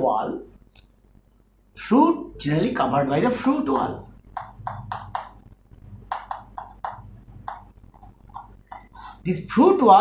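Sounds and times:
chalk on a chalkboard: 0:06.1 - 0:09.3.

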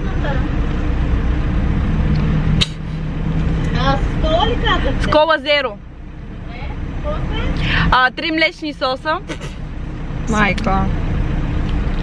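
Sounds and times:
idling car cabin rumble: 0:00.0 - 0:12.0
sharp click: 0:02.1 - 0:02.8.

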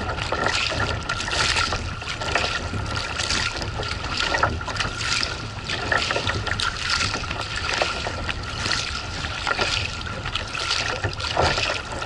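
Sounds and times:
water splashing against kayak hull: 0:00.0 - 0:12.0
wind rumble on microphone: 0:00.0 - 0:12.0.

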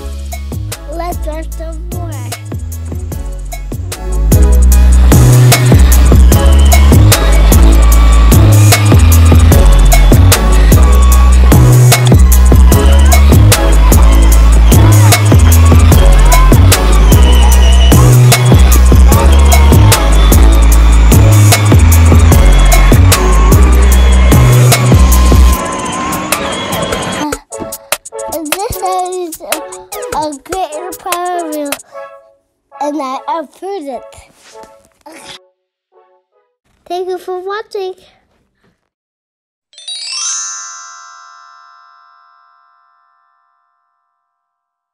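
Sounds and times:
electronic music with heavy bass: 0:00.0 - 0:31.9
bright bell-like chime ringing: 0:39.7 - 0:44.9.

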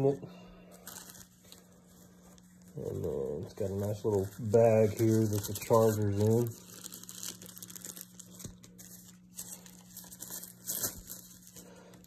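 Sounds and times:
faint steady hum: 0:00.0 - 0:12.0
pouch and packaging rustling: 0:00.7 - 0:12.0.

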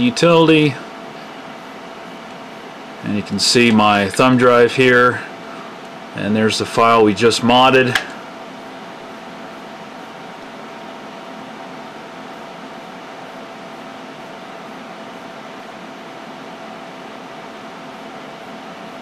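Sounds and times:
computer cooling fans whirring: 0:00.0 - 0:19.0
faint steady hum: 0:00.0 - 0:19.0.

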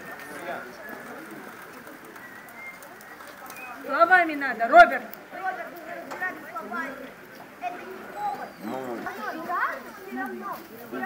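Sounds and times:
birds calling faintly: 0:00.0 - 0:11.0
murmur of distant voices: 0:00.0 - 0:11.0.

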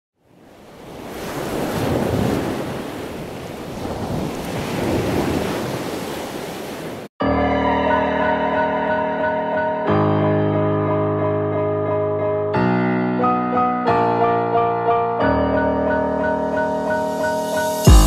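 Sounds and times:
ocean surf on beach: 0:00.2 - 0:07.1
piano music: 0:07.2 - 0:18.0.

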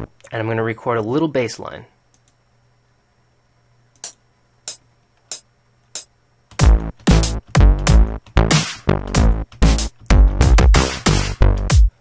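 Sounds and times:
metronome clicks: 0:04.0 - 0:06.1.

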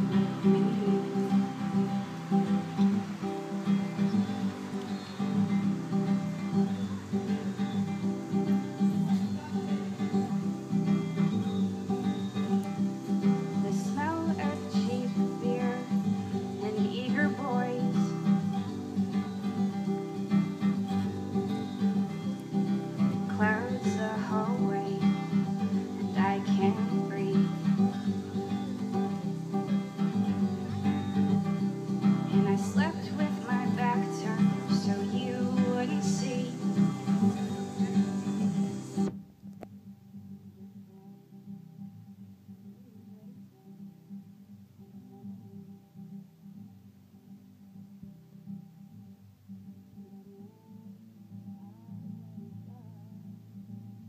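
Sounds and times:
acoustic guitar strumming: 0:00.0 - 0:52.7.

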